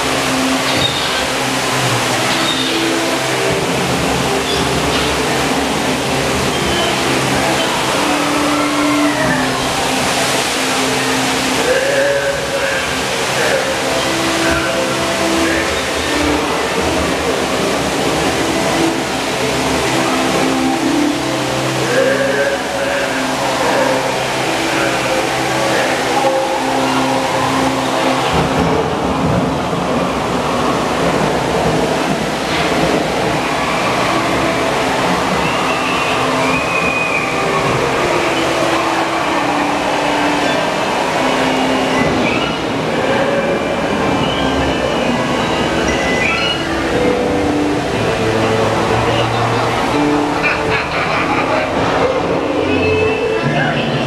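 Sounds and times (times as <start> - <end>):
faint voices: 0.0 - 54.0
machinery noise: 0.0 - 54.0
rushing water: 0.0 - 54.0.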